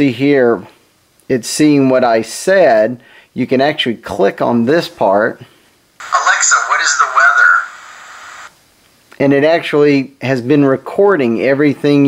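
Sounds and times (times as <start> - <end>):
tinny man's voice from speaker: 6.0 - 7.8
steady hiss: 6.0 - 8.5.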